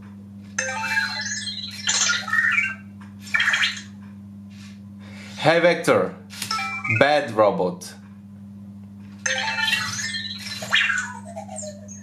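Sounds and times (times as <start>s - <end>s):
steady low hum: 0.0s - 12.0s
robot electronic chirps and beeps: 0.6s - 4.0s, 9.3s - 12.0s.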